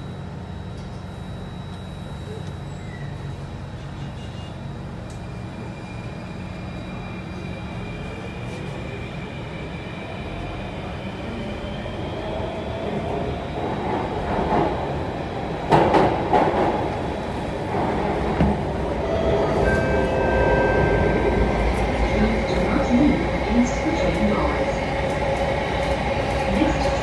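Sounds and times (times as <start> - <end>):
metro train motor whine: 0.0 - 27.0
train running noise: 0.0 - 27.0.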